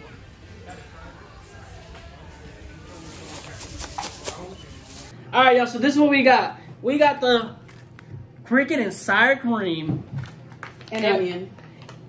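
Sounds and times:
faint distant voices: 0.0s - 5.3s.

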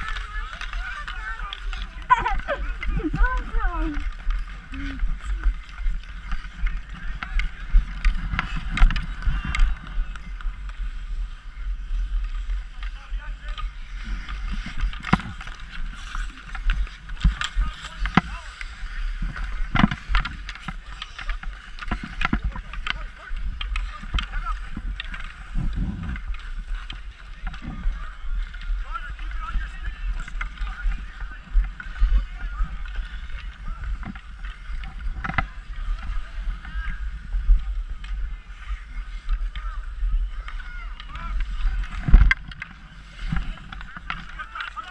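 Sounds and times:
hockey sticks and puck clacking: 0.0s - 44.9s
skates scraping on ice: 0.0s - 44.9s
wind rumbling on microphone: 0.0s - 44.9s.

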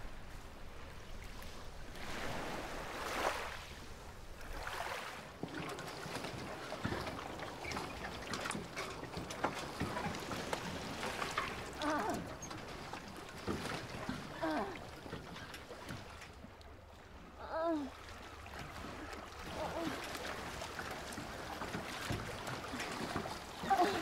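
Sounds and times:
water lapping around boats: 0.0s - 24.0s.

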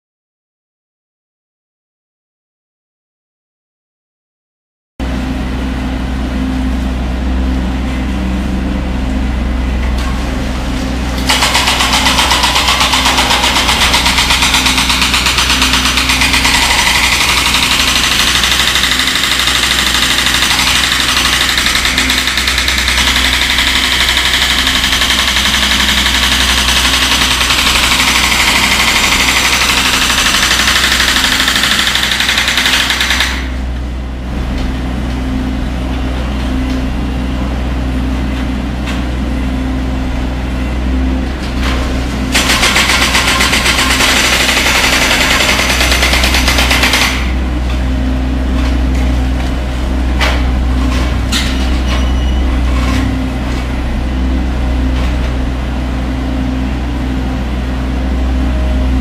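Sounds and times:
diesel engine running: 5.0s - 59.0s
high rattling whine: 5.0s - 59.0s.

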